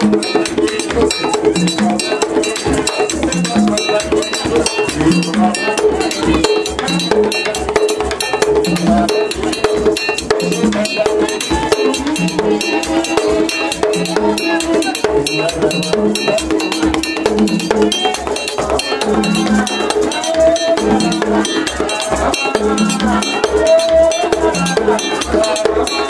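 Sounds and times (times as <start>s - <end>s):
drums: 0.0s - 26.0s
struck iron bell beat: 0.0s - 26.0s.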